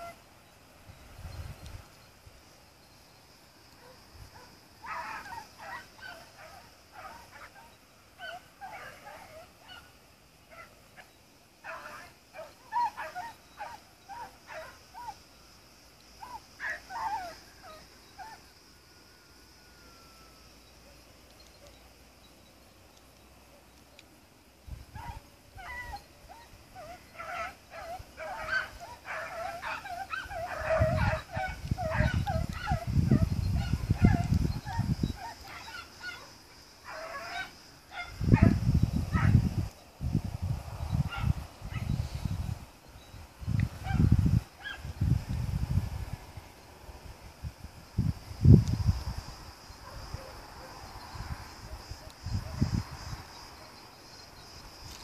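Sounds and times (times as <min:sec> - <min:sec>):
hounds baying: 0:10.5 - 0:15.2, 0:25.0 - 0:38.6.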